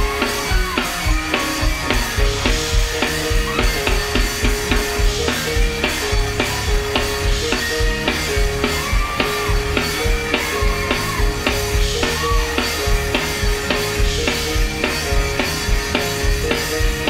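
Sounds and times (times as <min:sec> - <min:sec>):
gospel band playing: 0:00.0 - 0:17.0.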